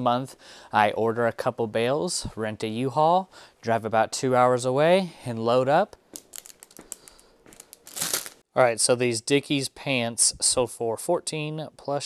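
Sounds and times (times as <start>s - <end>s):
plastic bag crinkling: 6.2s - 8.4s.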